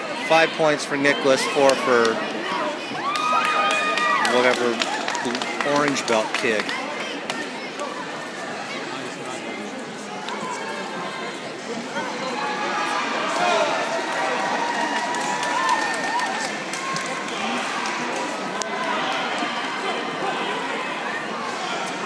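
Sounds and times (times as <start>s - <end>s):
crowd chatter in a hall: 0.0s - 22.0s.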